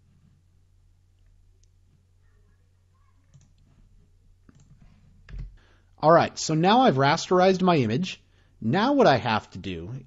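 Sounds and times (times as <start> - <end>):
computer mouse clicks: 3.2 - 3.8, 4.4 - 5.6.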